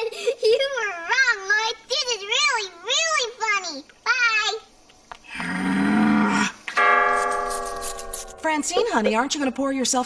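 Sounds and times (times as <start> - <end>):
low rasping growl: 5.3 - 6.6.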